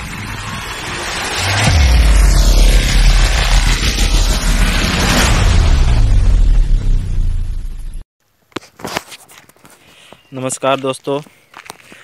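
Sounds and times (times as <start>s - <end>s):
deep boom with heavy bass: 0.0s - 8.0s
noisy whoosh: 0.0s - 8.0s.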